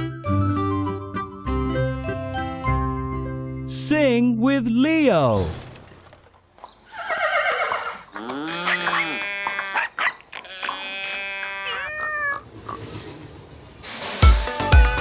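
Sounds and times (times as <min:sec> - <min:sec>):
cartoon farm animal calls: 0:06.9 - 0:12.9.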